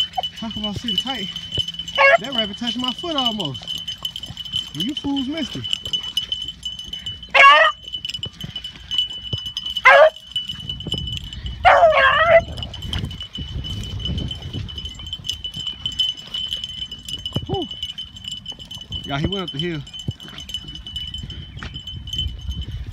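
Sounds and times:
beagles baying: 0.0s - 10.5s, 11.3s - 12.8s.

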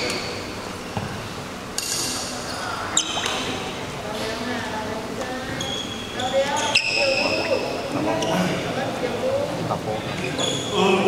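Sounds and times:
low chatter in large hall: 0.0s - 11.0s
sports shoes squeaking: 5.5s - 8.5s, 10.2s - 10.8s.

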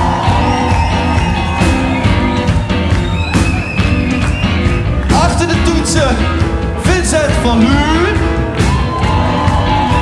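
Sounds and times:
live band playing: 0.0s - 10.0s
steady drum beat: 0.0s - 10.0s.

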